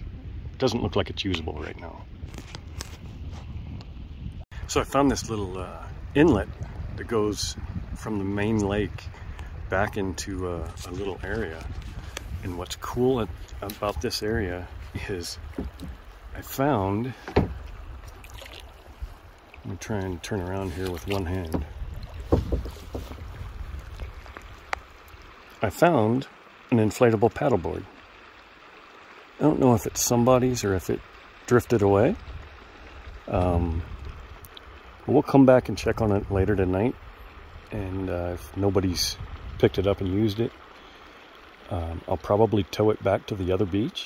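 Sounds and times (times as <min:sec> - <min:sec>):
wind buffeting microphone: 0:00.0 - 0:25.4, 0:31.7 - 0:40.5
water splashing against kayak: 0:04.6 - 0:26.1.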